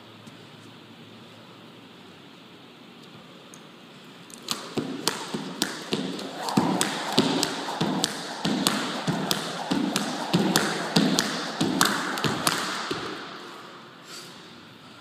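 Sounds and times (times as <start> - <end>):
jump rope ticking on floor: 4.4 - 13.3.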